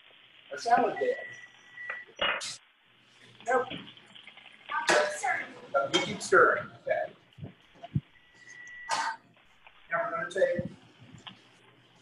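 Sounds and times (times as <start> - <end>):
person speaking: 9.8 - 12.0.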